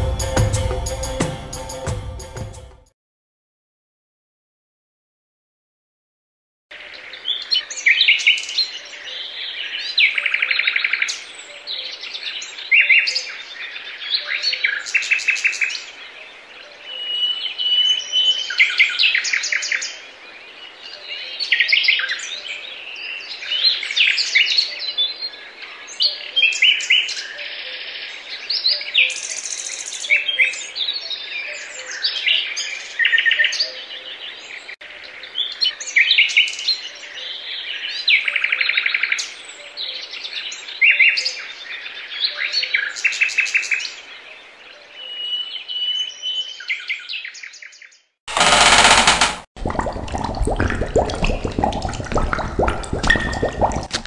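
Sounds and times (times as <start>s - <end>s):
loud rushing noise: 48.3s - 49.5s.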